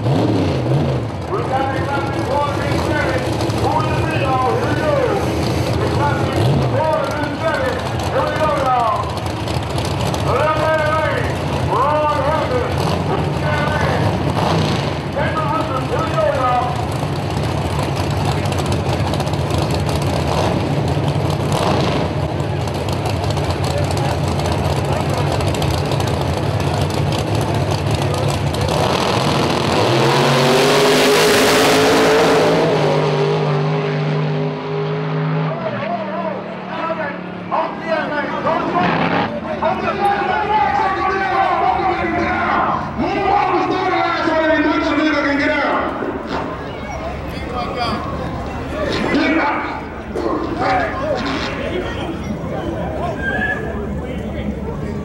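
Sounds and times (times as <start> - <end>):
racing cars full-throttle run: 0.0 - 55.0
racing cars idling: 0.0 - 55.0.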